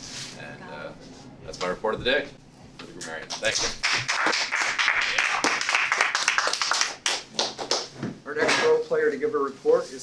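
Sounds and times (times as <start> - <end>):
low talk in room: 0.3 - 10.0
audience applauding: 3.5 - 7.9.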